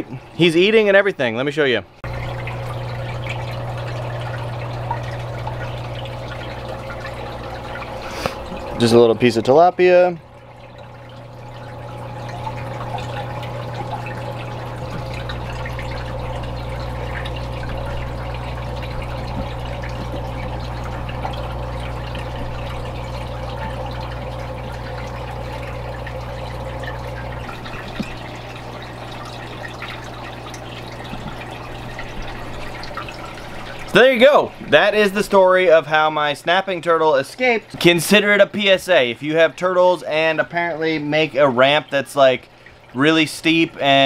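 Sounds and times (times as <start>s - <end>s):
aquarium filter hum: 0.0s - 44.0s
water trickling and splashing: 0.0s - 44.0s
deeper hum: 2.0s - 35.5s.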